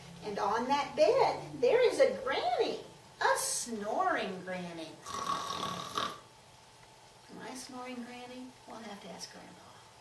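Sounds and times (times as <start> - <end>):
woman imitating a snore: 5.0 - 6.2.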